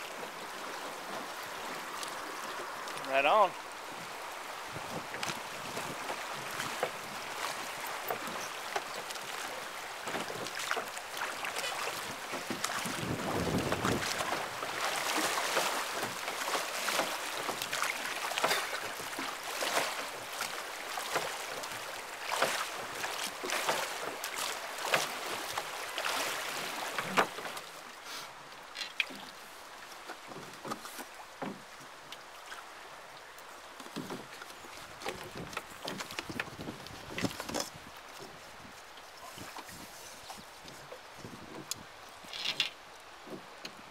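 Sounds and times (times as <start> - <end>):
river water rushing and splashing: 0.0 - 43.9
wind on microphone: 12.8 - 14.3, 36.2 - 38.0.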